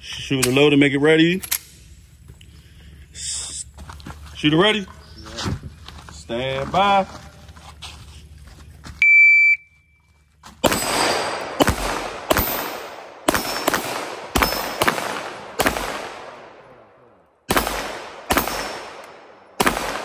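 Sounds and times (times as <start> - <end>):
shot timer beep: 9.0 - 10.0
pistol shots echoing: 10.6 - 20.0.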